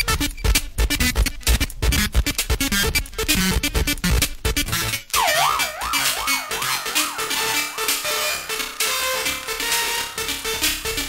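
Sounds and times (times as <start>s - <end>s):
tech-house beat: 0.0s - 11.0s
siren-like wailing tone: 5.2s - 9.2s.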